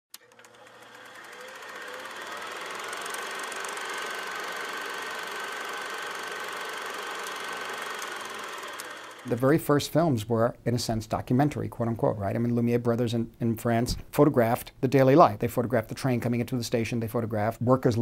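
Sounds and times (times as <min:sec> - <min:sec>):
rapid mechanical clatter: 0:00.2 - 0:09.5.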